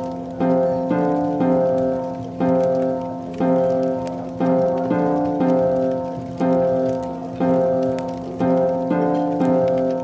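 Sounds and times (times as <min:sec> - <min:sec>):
faint crackling tavern ambience: 0:00.0 - 0:10.0
tavern music sustained chords: 0:00.0 - 0:10.0.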